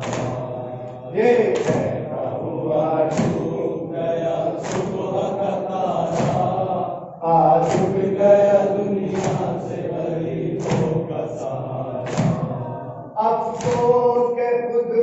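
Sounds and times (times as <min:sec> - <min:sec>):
rhythmic slaps: 0:00.0 - 0:14.5
men chanting in unison: 0:00.0 - 0:15.0.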